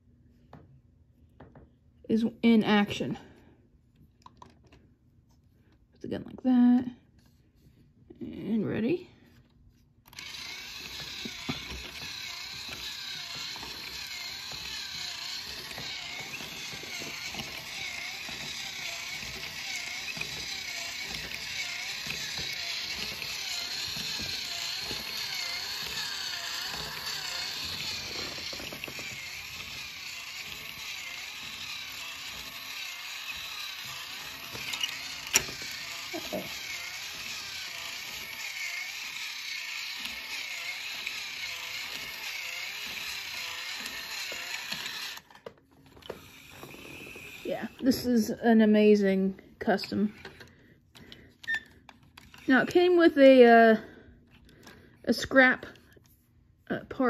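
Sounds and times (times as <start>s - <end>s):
toy motor whirring: 10.0s - 56.2s.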